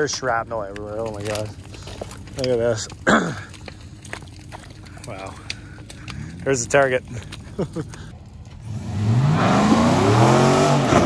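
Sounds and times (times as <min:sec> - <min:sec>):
person clearing throat: 0:03.0 - 0:03.6.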